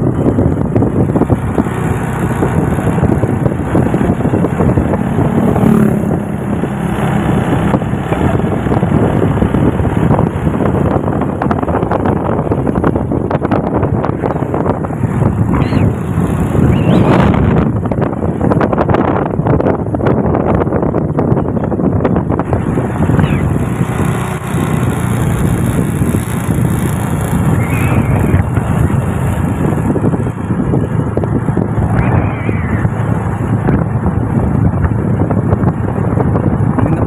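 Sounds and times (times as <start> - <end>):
vehicle engine and tyres rumbling: 0.0 - 37.0
wind buffeting microphone: 0.0 - 37.0.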